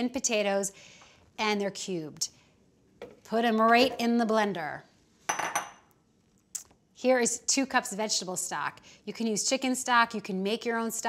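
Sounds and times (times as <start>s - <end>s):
glass bowl clinking on stone: 5.3s - 5.8s.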